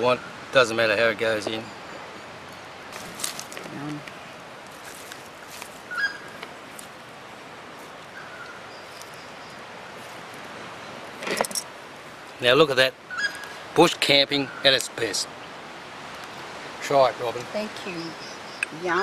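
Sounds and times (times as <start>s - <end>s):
outdoor background hiss: 0.0s - 19.0s.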